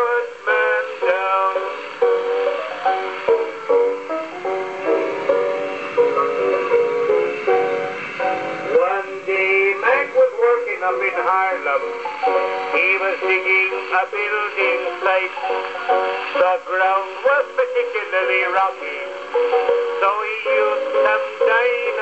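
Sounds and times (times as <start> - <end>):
male singer on gramophone record: 0.0 - 2.4, 5.2 - 7.6, 8.2 - 22.0
piano accompaniment: 0.0 - 22.0.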